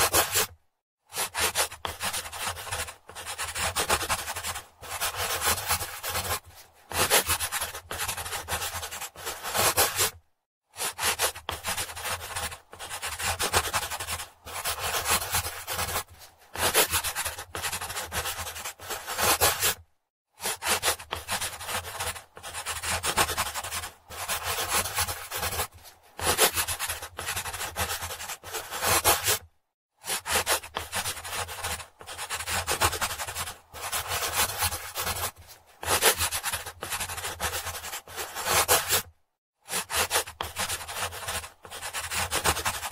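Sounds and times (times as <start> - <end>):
pencil scratching on paper: 0.0 - 19.8, 20.4 - 42.9.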